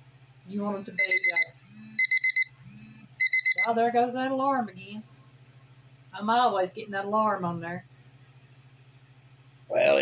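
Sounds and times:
high-pitched alarm beeps: 0:00.8 - 0:03.9.

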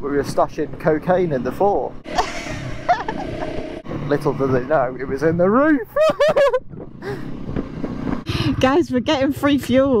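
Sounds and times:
motorcycle engine running: 0:01.9 - 0:04.2
burst of laughter: 0:02.2 - 0:03.6.

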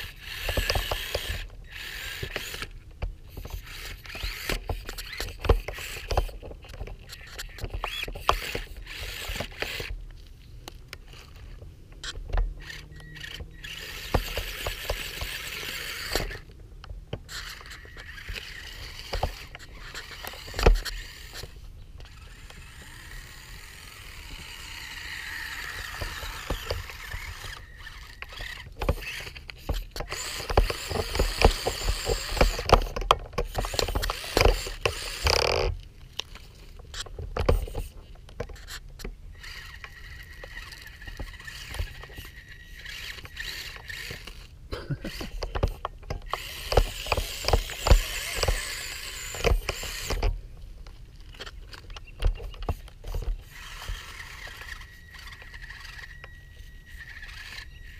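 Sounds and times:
small electric motor whining: 0:00.0 - 0:57.9.

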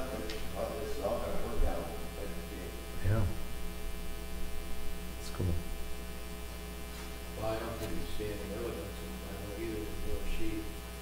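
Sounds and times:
electrical mains hum: 0:00.0 - 0:11.0
faint voice sounds: 0:03.0 - 0:03.4.

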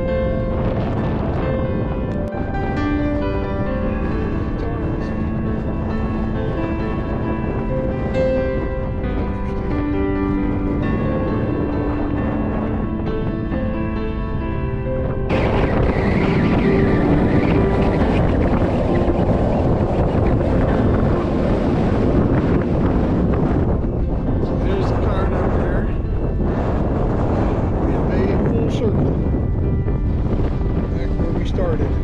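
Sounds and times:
background music: 0:00.0 - 0:32.0
wind buffeting microphone: 0:00.0 - 0:32.0.

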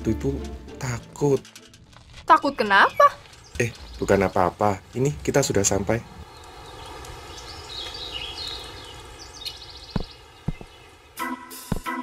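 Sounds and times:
light taps: 0:09.9 - 0:10.7
rhythmic music: 0:11.2 - 0:12.0.

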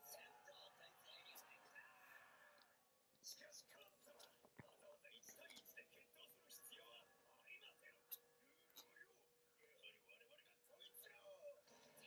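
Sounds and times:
faint whispered speech: 0:00.0 - 0:12.0.

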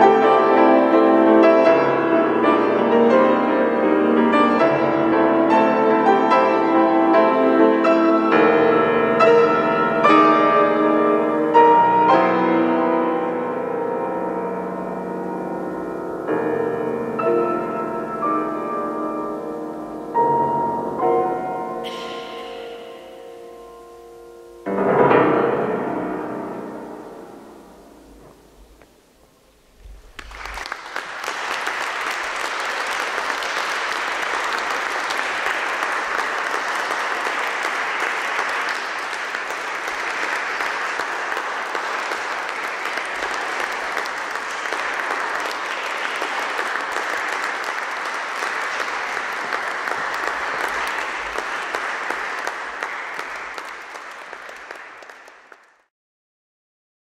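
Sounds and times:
piano: 0:00.0 - 0:55.9
audience applauding: 0:21.8 - 0:23.4, 0:29.8 - 0:55.9.

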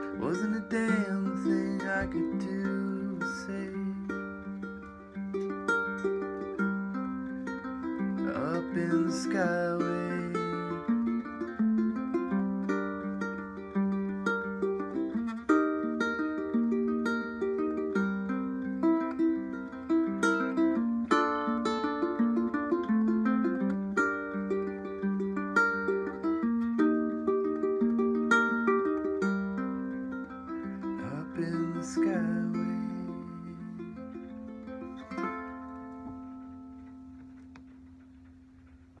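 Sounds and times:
ukulele plucking: 0:00.0 - 0:39.0.

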